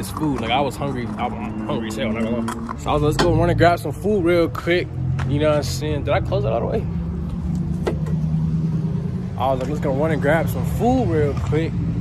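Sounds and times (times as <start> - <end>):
motor vehicle humming: 0.0 - 12.0.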